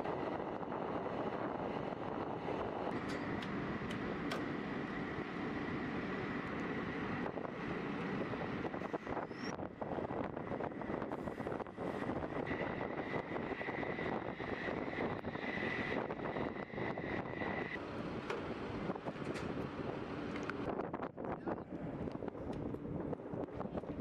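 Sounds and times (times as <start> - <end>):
jet engine noise with high whine: 0.0 - 24.0.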